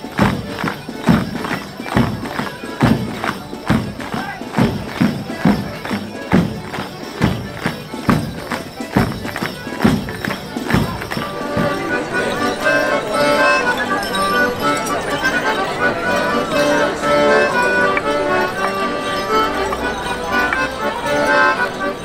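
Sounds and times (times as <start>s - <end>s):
dancers' bells and steps: 0.0s - 22.0s
melodeon tune: 4.8s - 22.0s.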